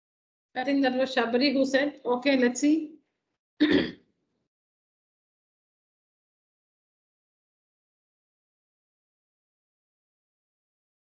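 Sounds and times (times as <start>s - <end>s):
person clearing throat: 3.6s - 4.0s.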